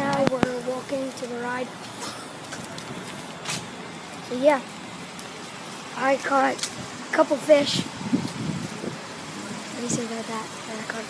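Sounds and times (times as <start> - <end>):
outdoor street noise: 0.0 - 11.0.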